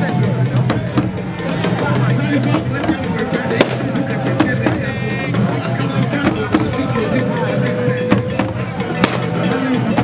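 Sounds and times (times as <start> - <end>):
sharp drum strikes: 0.0 - 7.0, 8.0 - 10.0
crowd of voices: 0.0 - 10.0
drumming: 0.0 - 10.0.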